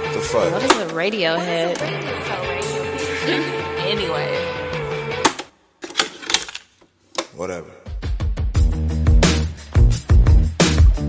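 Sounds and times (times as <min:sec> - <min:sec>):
recorded music and voices: 0:00.0 - 0:05.3.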